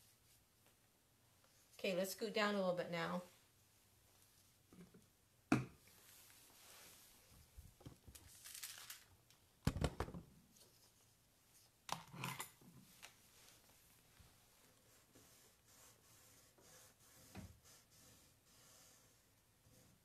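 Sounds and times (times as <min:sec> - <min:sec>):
cloth rustling: 0:05.9 - 0:09.1.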